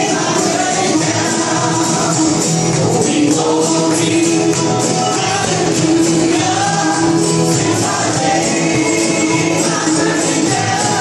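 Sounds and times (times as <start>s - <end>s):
acoustic string instruments: 0.0s - 11.0s
vocal group singing gospel: 0.0s - 11.0s.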